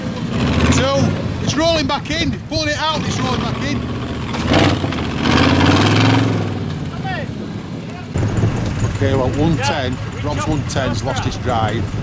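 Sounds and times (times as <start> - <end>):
off-road engine running under load: 0.0 - 12.0.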